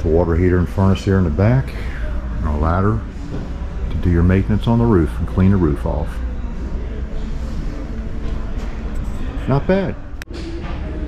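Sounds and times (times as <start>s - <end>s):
low rumble of indoor hall noise: 0.0s - 11.0s.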